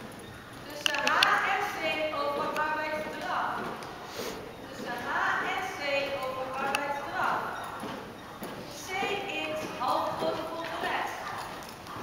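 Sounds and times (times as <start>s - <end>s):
horse trotting on sand: 0.0s - 12.0s
people talking: 0.7s - 3.7s, 4.7s - 7.6s, 8.7s - 11.4s.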